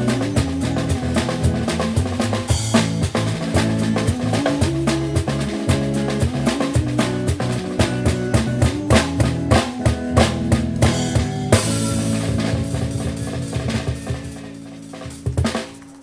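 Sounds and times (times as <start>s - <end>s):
drum and cymbal strikes: 0.0s - 16.0s
live band playing: 0.0s - 16.0s.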